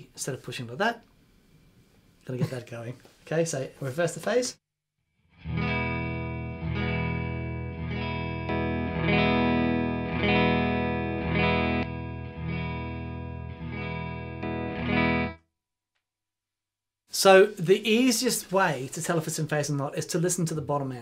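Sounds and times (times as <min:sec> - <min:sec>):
electric guitar strumming chord: 0:05.3 - 0:15.4.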